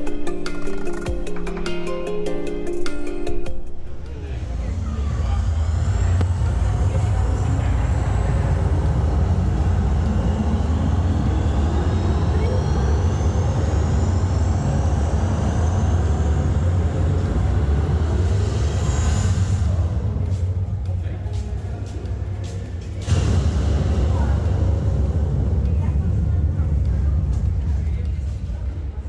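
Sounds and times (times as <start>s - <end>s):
music notes: 0.0s - 4.4s
deep electronic drone: 0.0s - 29.0s.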